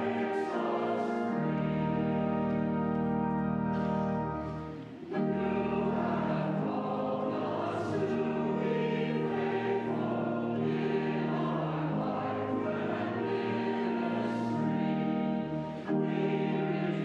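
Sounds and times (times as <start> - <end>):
congregation and choir singing a hymn: 0.0 - 17.0
pipe organ: 0.0 - 17.0.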